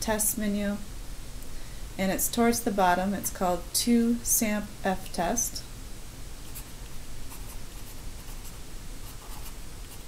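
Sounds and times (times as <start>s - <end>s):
marker pen scratching on paper: 6.5s - 10.0s.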